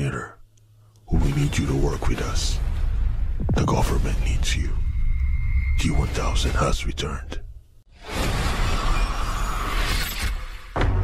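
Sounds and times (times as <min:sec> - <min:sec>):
deep boom: 0:02.0 - 0:06.5
music: 0:10.6 - 0:11.0.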